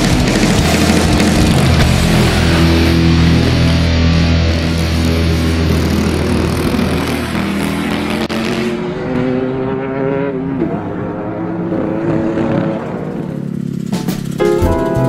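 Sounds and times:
racing kart engines: 0:00.0 - 0:15.0
background music: 0:14.0 - 0:15.0.

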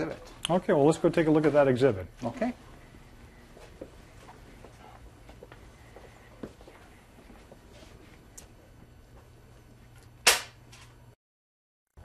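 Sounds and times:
sharp tool snap: 0:10.2 - 0:10.6.

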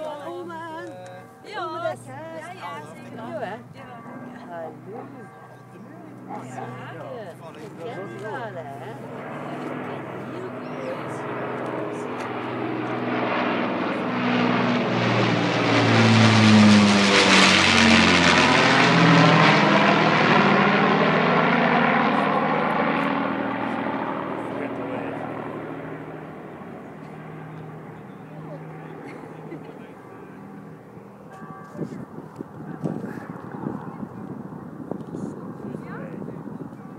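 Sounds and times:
propeller plane engines droning: 0:00.0 - 0:36.9.

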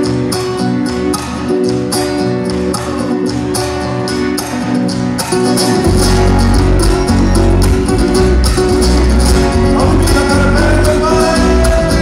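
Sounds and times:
acoustic guitars: 0:00.0 - 0:12.0
electric bass line: 0:05.8 - 0:12.0
person singing: 0:09.5 - 0:12.0.

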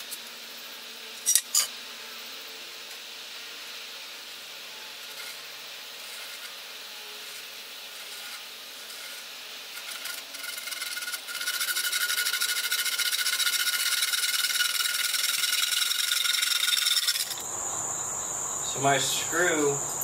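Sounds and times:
high insect chirring: 0:00.0 - 0:20.0
loud insect buzz: 0:00.0 - 0:20.0
bow saw rasping through wood: 0:04.9 - 0:17.4.

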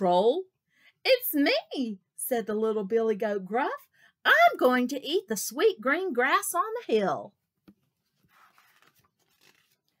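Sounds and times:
faint soft rustle: 0:07.9 - 0:10.0.

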